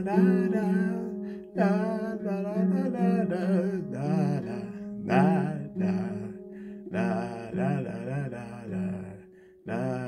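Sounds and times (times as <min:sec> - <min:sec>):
ukulele: 0:00.0 - 0:07.0
man singing wordless melody: 0:00.0 - 0:10.0.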